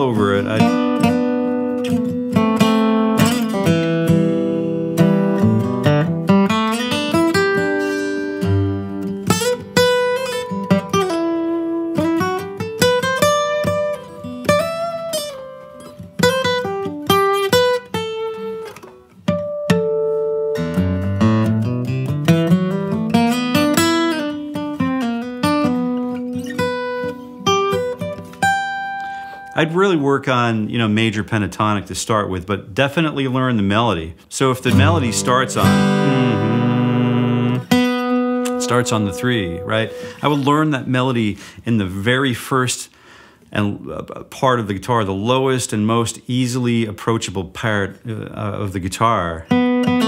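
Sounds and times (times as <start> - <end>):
acoustic guitar solo with slides: 0.0 - 31.7, 33.1 - 42.6, 48.5 - 50.0.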